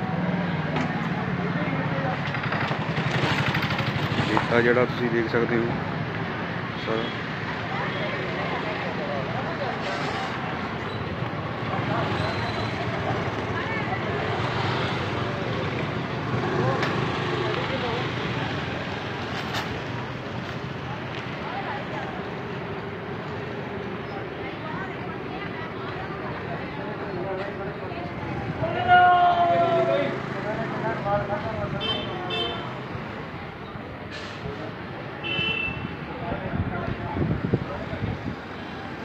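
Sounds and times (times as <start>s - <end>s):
outdoor street noise: 0.0s - 39.0s
people talking in background: 0.0s - 39.0s.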